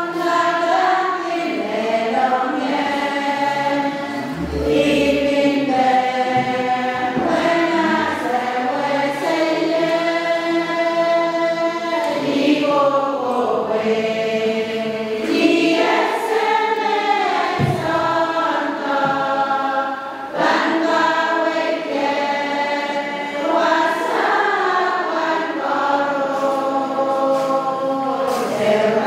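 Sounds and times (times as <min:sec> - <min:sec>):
women singing a hymn in harmony: 0:00.0 - 0:29.0.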